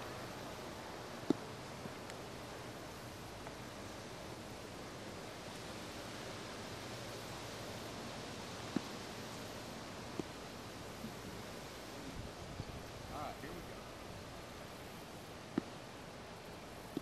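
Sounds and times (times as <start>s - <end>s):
wind hiss: 0.0s - 17.0s.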